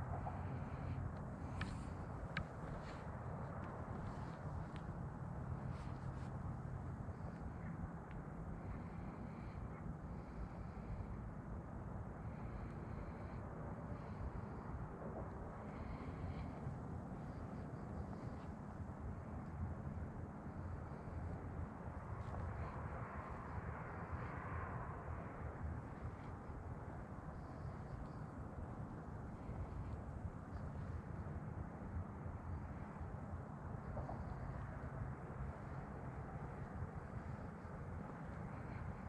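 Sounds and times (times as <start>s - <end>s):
distant road traffic hum: 0.0s - 39.0s.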